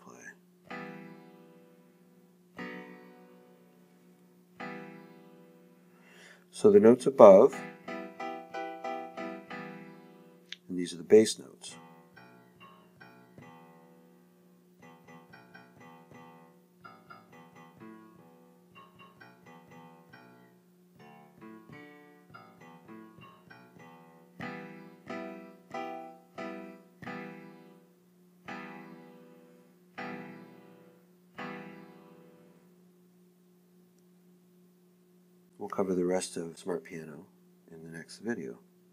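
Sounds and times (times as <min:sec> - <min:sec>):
grand piano chords: 0:00.6 - 0:10.4, 0:11.0 - 0:32.7.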